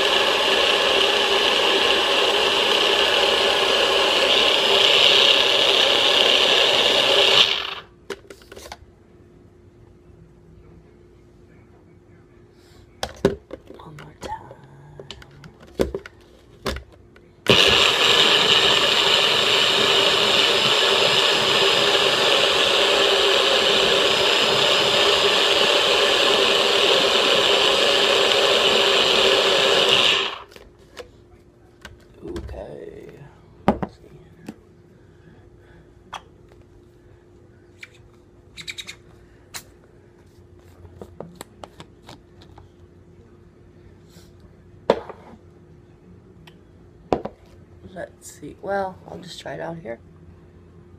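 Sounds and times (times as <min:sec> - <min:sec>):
blender motor blending ice: 0:00.0 - 0:07.9, 0:17.5 - 0:30.6.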